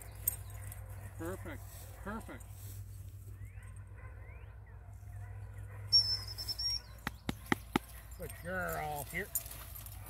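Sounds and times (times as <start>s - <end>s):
songbirds chirping faintly: 0.0s - 10.0s.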